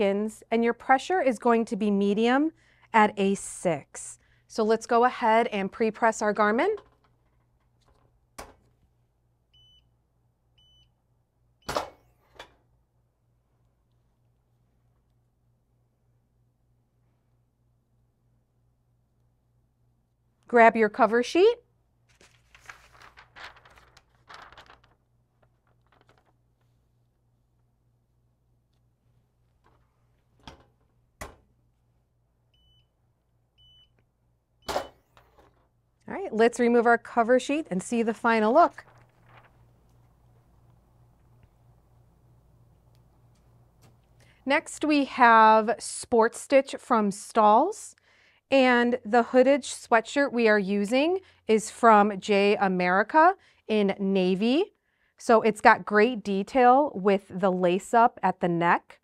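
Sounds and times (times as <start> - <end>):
timer beeps: 33.6 - 33.9.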